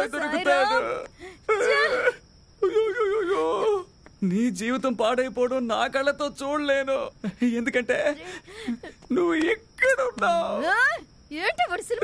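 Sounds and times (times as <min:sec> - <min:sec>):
woman wailing: 0:00.0 - 0:03.8.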